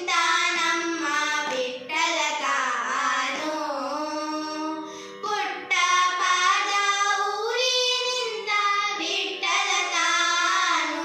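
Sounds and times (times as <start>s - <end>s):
girls singing together: 0.0s - 11.0s.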